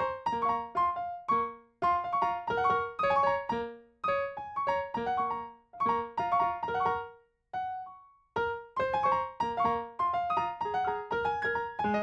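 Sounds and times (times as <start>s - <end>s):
piano playing: 0.0s - 12.0s.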